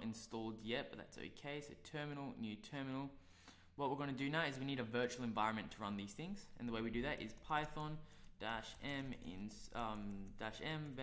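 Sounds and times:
man speaking: 0:00.0 - 0:03.2, 0:03.8 - 0:11.0.

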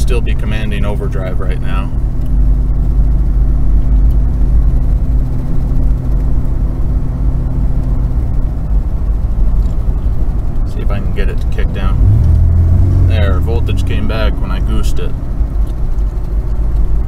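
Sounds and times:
car engine hum: 0:00.0 - 0:17.0
tyre and road rumble: 0:00.0 - 0:17.0.

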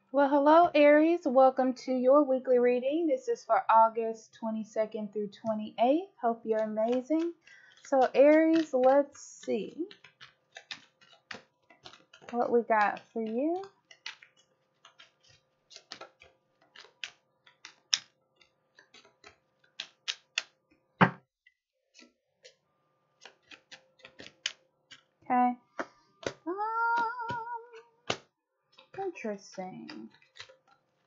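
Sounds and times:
cards being shuffled: 0:06.5 - 0:21.2, 0:23.2 - 0:25.1, 0:25.8 - 0:31.0
person humming with wavering pitch: 0:26.5 - 0:27.8.

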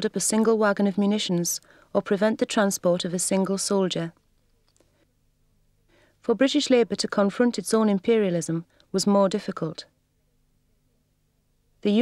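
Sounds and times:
narrator's voice: 0:00.0 - 0:04.2
faint low hum: 0:00.0 - 0:12.0
faint clicks: 0:04.2 - 0:05.0.

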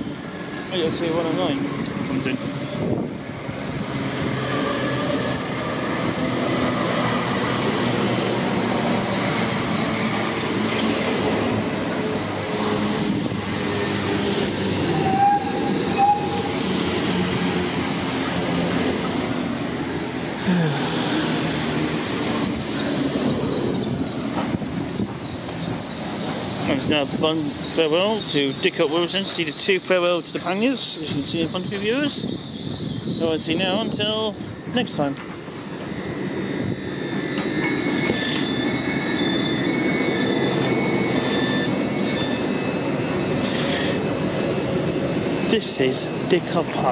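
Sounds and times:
train wheels rumbling on rail: 0:00.0 - 0:46.9.

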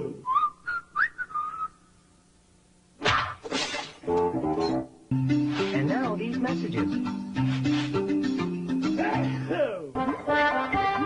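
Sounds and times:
person whistling: 0:00.2 - 0:01.8.

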